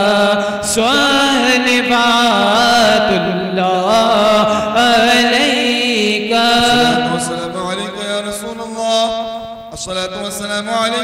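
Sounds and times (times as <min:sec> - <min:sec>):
man chanting through a microphone: 0:00.0 - 0:08.8
steady low drone: 0:06.4 - 0:08.3.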